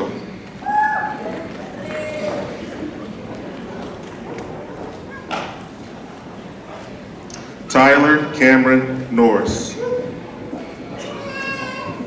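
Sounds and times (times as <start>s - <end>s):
audience murmur: 0.0s - 12.0s.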